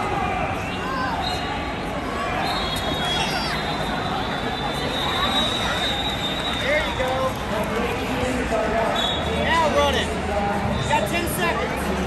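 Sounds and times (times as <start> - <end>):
crowd chatter in a hall: 0.0 - 12.0.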